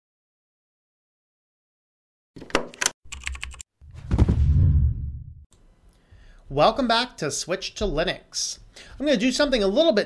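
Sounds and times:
deep swelling sound: 0:04.1 - 0:05.5.

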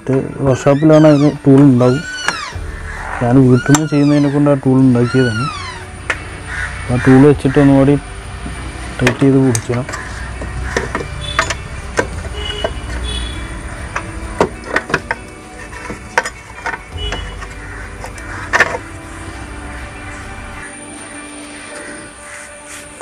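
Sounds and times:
faint background music: 0:00.0 - 0:23.0
metal parts clicking and knocking: 0:09.0 - 0:13.1, 0:13.9 - 0:18.8.

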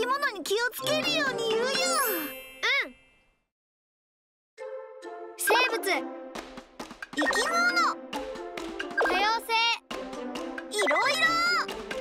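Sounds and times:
bright bell-like chime: 0:01.8 - 0:03.4.

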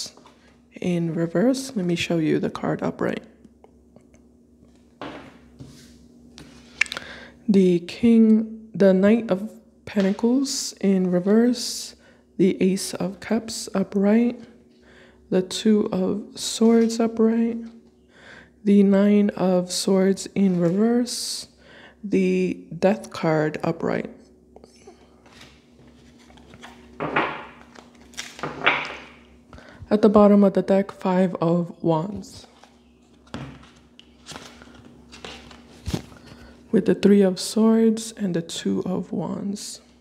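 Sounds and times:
cards rustling: 0:25.2 - 0:27.0, 0:32.1 - 0:36.5.

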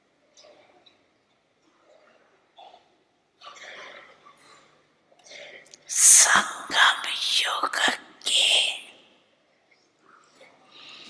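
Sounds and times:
elderly woman talking into a microphone: 0:05.9 - 0:08.8.

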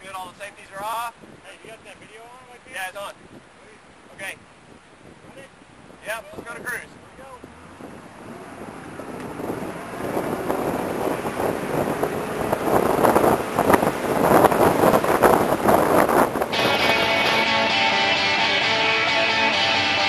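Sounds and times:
wind buffeting microphone: 0:00.0 - 0:18.1
strummed guitar music: 0:16.4 - 0:20.0.

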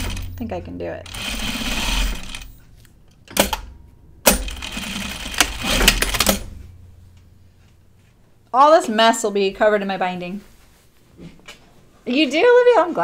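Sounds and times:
sewing machine running: 0:00.0 - 0:00.4, 0:01.0 - 0:02.6, 0:04.3 - 0:06.5.

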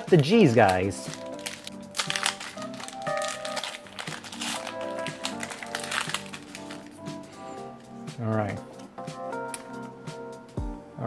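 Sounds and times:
background music: 0:00.0 - 0:11.0
foil wrapper crinkling and tearing: 0:00.2 - 0:07.0.

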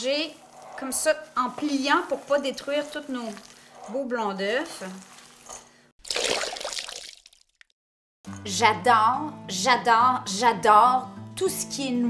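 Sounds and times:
spatula rustling nuts in bowl: 0:00.0 - 0:05.6.

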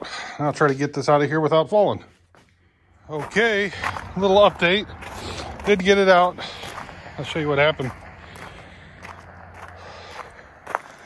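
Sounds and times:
footsteps on gravel: 0:01.9 - 0:11.0.

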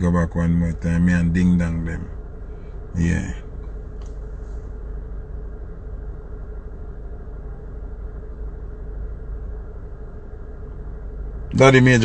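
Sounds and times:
engine low rumble: 0:00.0 - 0:12.0
faint steady hum: 0:00.0 - 0:12.0.

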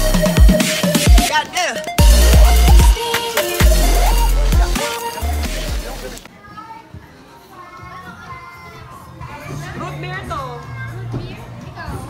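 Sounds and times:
faint music: 0:01.2 - 0:12.0
indistinct chatter: 0:02.0 - 0:12.0.

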